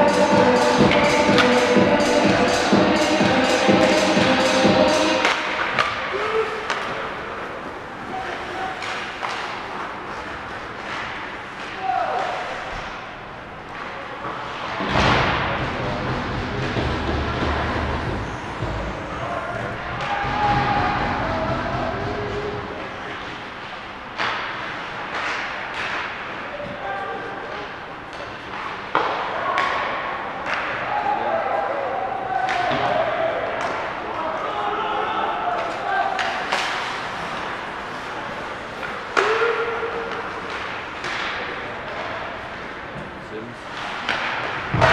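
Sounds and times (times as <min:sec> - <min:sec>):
hockey sticks and puck clacking: 0:00.2 - 0:02.6, 0:05.0 - 0:31.0, 0:32.3 - 0:34.6, 0:35.5 - 0:44.9
people shouting: 0:06.0 - 0:06.8, 0:11.8 - 0:12.6, 0:19.0 - 0:22.7, 0:39.1 - 0:40.4
low rumble: 0:15.0 - 0:22.8.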